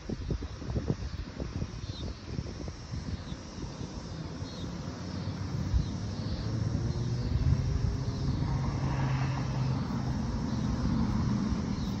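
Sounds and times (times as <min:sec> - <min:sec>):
vehicle engine rumble: 0:02.4 - 0:12.0.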